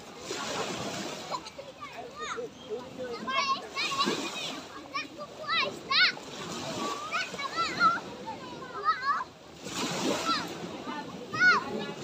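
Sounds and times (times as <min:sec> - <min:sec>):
small waves breaking on shore: 0:00.0 - 0:12.0
children calling and squealing: 0:00.2 - 0:12.0.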